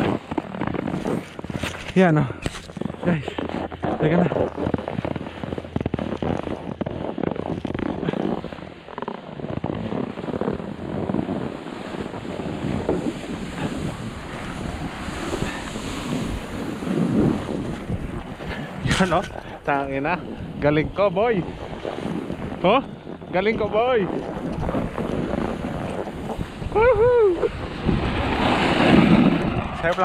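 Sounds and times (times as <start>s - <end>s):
snowboard scraping over snow: 0.0s - 30.0s
wind rushing over microphone: 0.0s - 30.0s.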